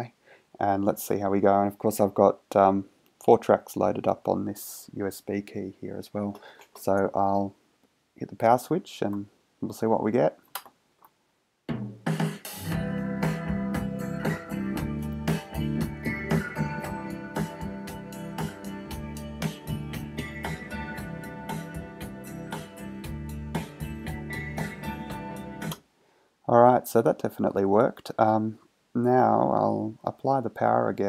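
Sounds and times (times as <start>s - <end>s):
guitar music through speaker: 12.5s - 25.8s.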